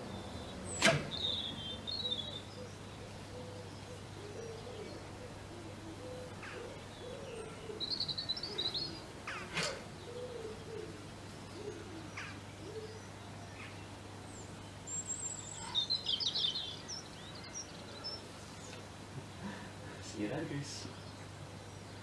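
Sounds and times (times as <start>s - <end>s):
birds chirping: 0.0s - 22.0s
low wavering cooing: 1.1s - 13.2s.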